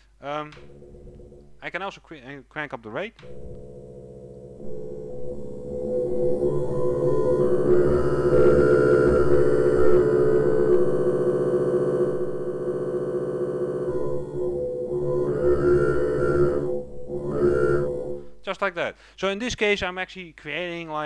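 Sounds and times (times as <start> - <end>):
granular synth tone: 0.4 - 1.9, 3.2 - 18.7.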